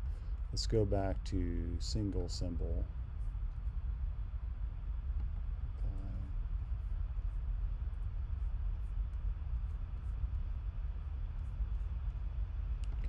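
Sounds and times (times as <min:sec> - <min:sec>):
faint hum: 0:00.0 - 0:13.0
low background rumble: 0:00.0 - 0:13.0.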